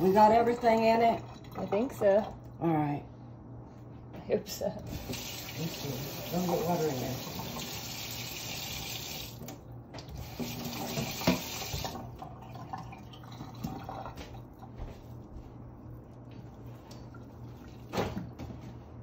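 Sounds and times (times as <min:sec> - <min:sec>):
faucet running into steel sink: 0:04.9 - 0:14.2
hands mixing raw meat in bowl: 0:14.1 - 0:17.9.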